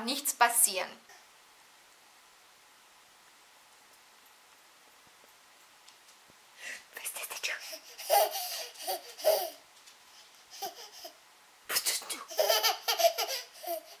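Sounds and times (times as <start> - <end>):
baby laughing: 7.6 - 9.6, 10.4 - 11.2, 12.2 - 14.0.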